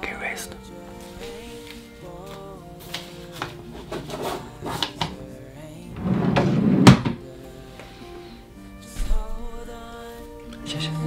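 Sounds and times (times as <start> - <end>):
desk drawer sliding shut: 5.9 - 7.2.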